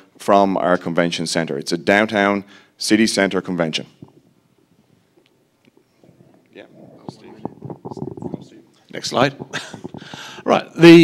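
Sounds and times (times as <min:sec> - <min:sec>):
quiet whispering: 0:05.8 - 0:10.6
person speaking: 0:05.9 - 0:11.0.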